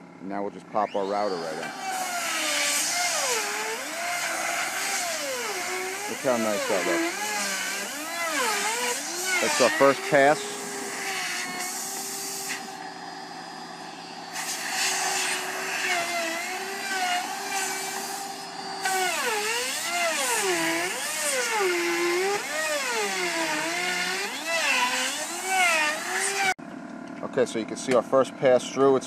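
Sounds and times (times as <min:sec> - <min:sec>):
router cutting wood panel: 0:00.8 - 0:26.6.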